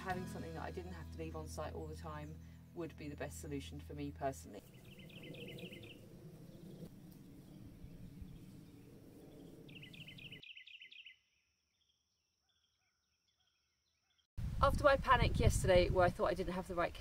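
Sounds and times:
low rumble of wind: 1.4 - 10.4, 14.4 - 17.0
small bird chirping: 4.6 - 14.3.

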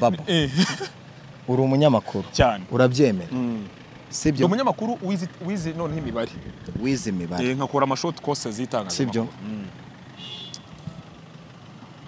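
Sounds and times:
vehicle traffic: 0.0 - 12.0.

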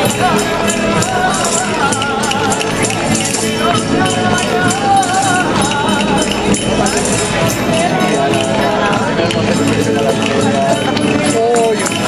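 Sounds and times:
crowd talking: 0.0 - 12.0
dancers' steps on pavement: 0.0 - 12.0
folk dance music: 0.0 - 12.0.

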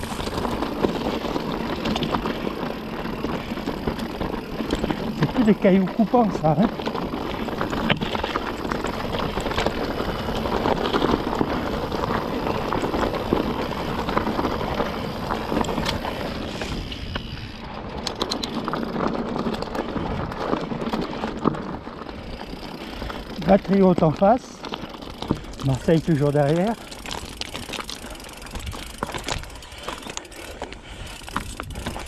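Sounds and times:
bike tyres crunching on stones: 0.0 - 32.0
stones and bike rattling: 0.0 - 32.0.

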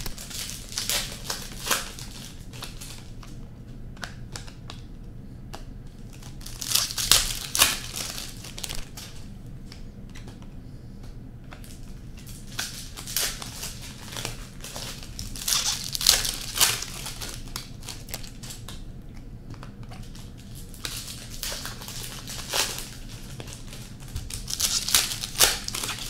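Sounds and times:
wrappers crinkling and tearing: 0.0 - 3.4, 6.0 - 9.2, 11.6 - 18.9, 19.9 - 26.0
cards being shuffled: 5.5 - 18.9, 19.5 - 26.0.

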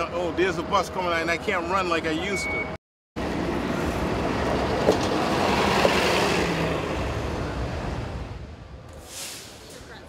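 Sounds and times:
bus engine and tyre noise: 0.0 - 10.0.

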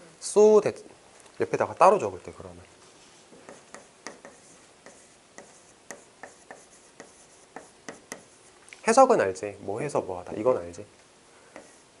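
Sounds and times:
chalk tapping on chalkboard: 3.4 - 8.4, 11.6 - 11.8.

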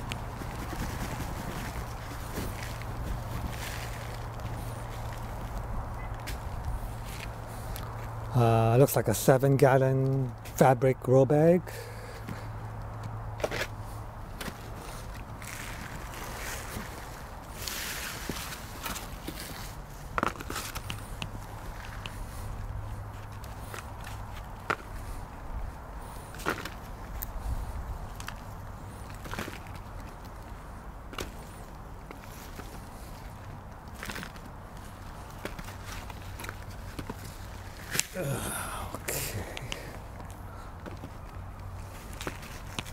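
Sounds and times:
soil crumbling and rustling: 0.0 - 8.4, 28.0 - 42.9.

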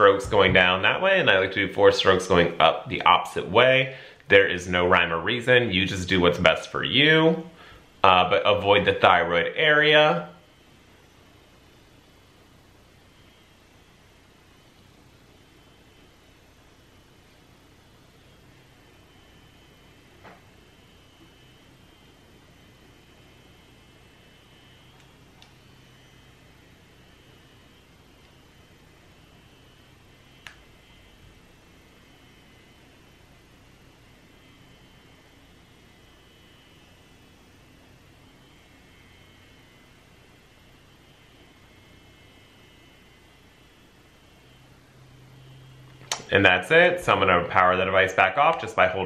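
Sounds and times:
low hiss and hum: 0.0 - 49.0
soft click: 46.0 - 46.3.

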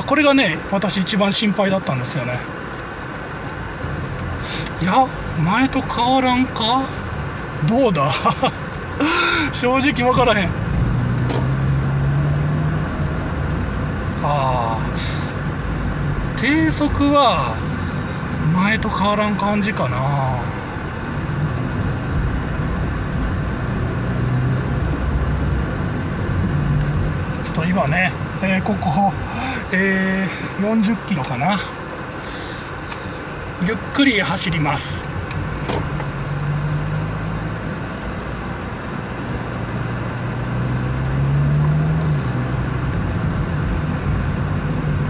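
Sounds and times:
car engine and road hum: 0.0 - 45.0.

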